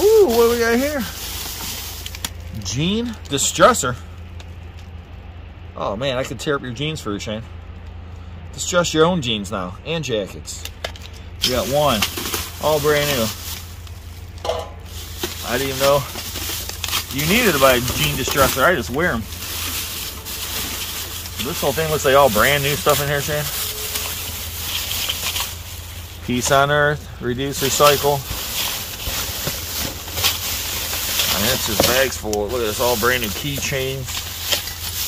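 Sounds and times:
plastic bags rustling and crinkling: 0.0 - 3.2, 10.9 - 35.0.

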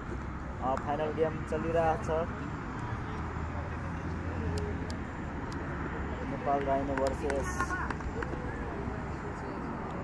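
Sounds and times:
faint distant voices: 0.4 - 10.0.

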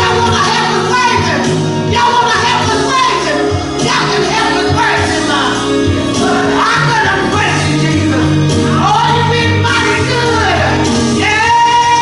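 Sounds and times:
instrumental accompaniment: 0.0 - 12.0
low bass notes: 0.0 - 12.0
woman singing gospel: 0.0 - 12.0.

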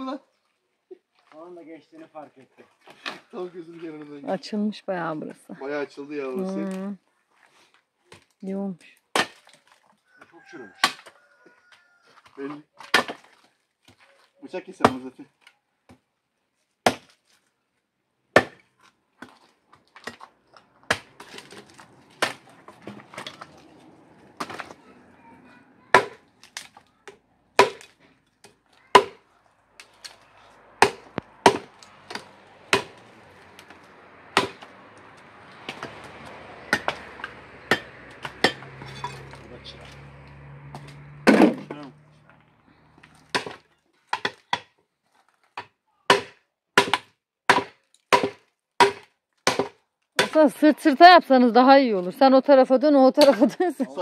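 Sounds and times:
hatchets chopping firewood: 9.1 - 9.6, 10.8 - 11.2, 16.8 - 17.2, 18.3 - 23.6, 25.9 - 42.0, 43.0 - 44.8, 45.5 - 50.5.

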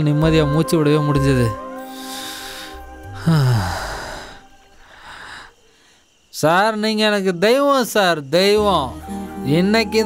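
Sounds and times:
man sighing: 2.0 - 5.5.

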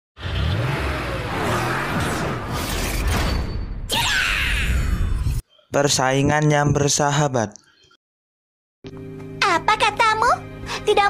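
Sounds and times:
cartoon race car engine revving: 0.2 - 3.0.

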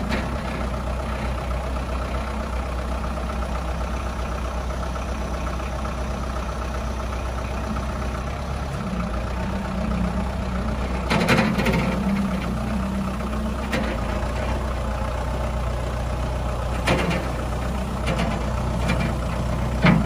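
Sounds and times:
tractor diesel engine running: 0.0 - 20.0.

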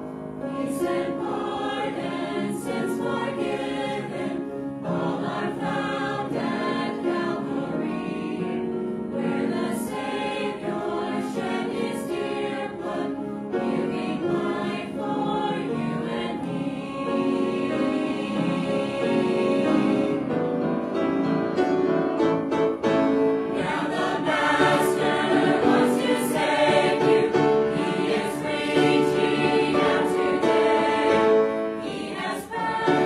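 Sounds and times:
church choir singing: 0.0 - 33.0.

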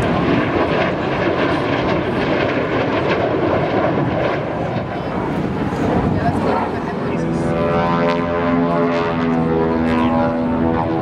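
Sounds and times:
jet fighter engine roaring past: 0.0 - 11.0.

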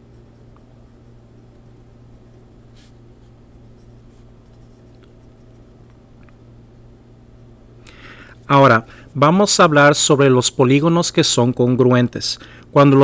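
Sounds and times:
pencil scratching on paper: 0.0 - 5.8.

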